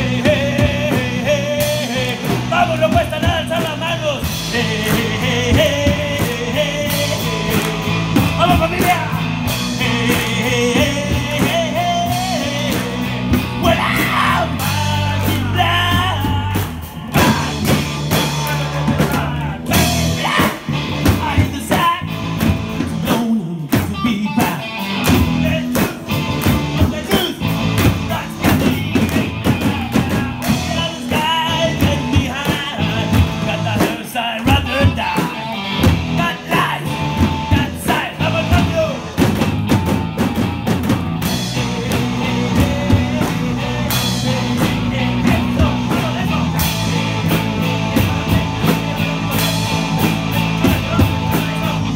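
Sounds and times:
bass line: 0.0 - 51.9
drum kit: 0.0 - 51.9
electric guitars: 0.0 - 51.9.

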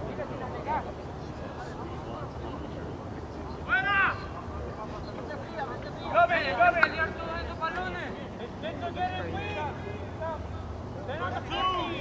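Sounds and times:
outdoor field noise: 0.0 - 12.0.

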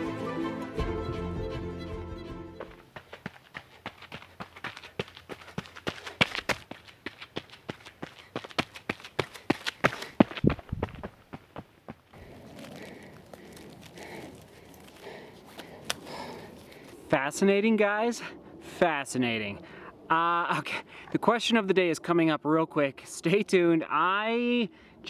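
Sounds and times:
running footsteps on gravel: 2.6 - 17.1
steady rustle: 12.1 - 17.1.

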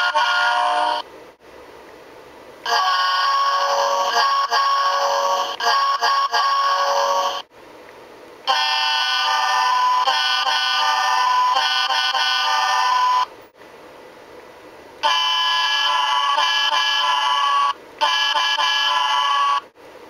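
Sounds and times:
digitized train air horn: 0.0 - 1.1, 2.6 - 7.5, 8.5 - 13.3, 15.0 - 19.7.

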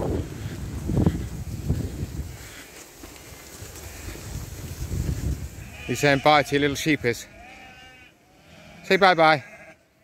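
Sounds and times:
wind buffeting microphone: 0.0 - 2.6, 3.4 - 5.9.

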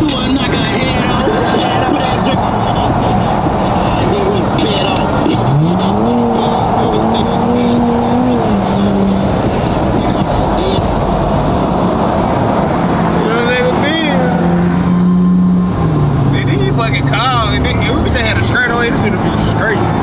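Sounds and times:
car engine revving: 0.0 - 20.0
road and tyre noise: 0.0 - 20.0.

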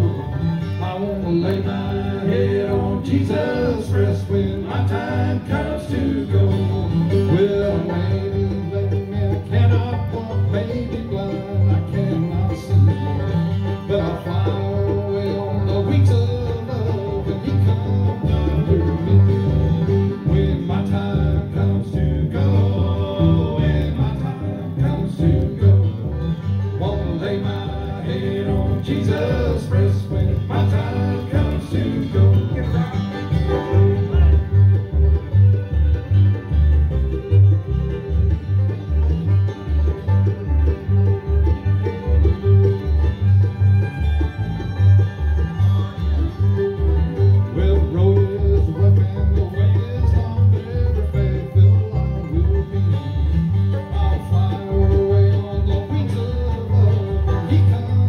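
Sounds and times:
acoustic guitar: 0.0 - 58.0
banjo: 0.0 - 58.0
fiddle: 0.0 - 58.0
mandolin: 0.0 - 58.0
upright bass pulse: 0.0 - 58.0.

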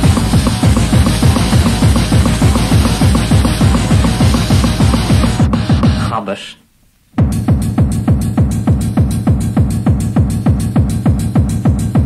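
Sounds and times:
hi-hats ticking: 0.0 - 6.0, 7.2 - 12.0
heavy kick drum: 0.0 - 6.1, 7.2 - 12.0
hard techno music: 0.0 - 6.3, 7.2 - 12.0.

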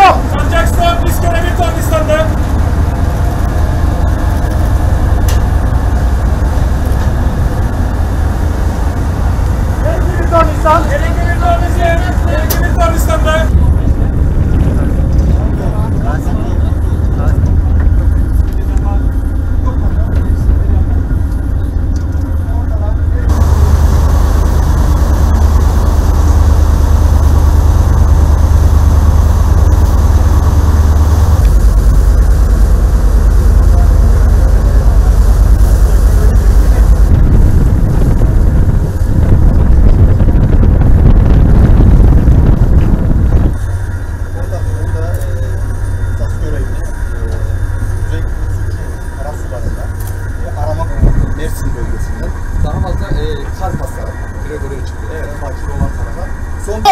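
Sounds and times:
wind buffeting microphone: 0.0 - 21.6, 23.2 - 45.0, 50.6 - 54.5
ship engine rumble: 0.0 - 56.9.

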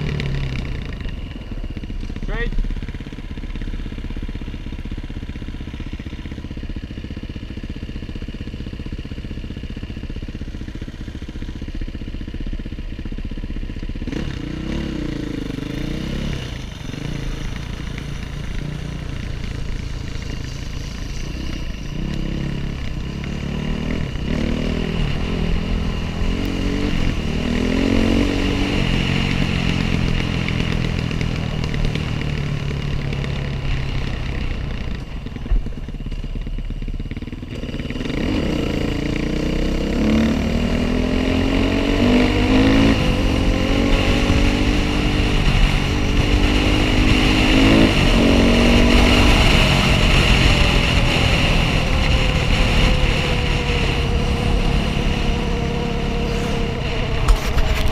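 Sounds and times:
dirt bike engine revving: 14.0 - 34.0, 37.1 - 57.9.

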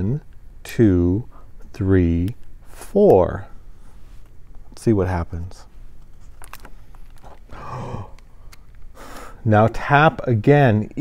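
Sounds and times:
page turning: 6.0 - 7.4
soft breathy sigh: 7.5 - 8.4.

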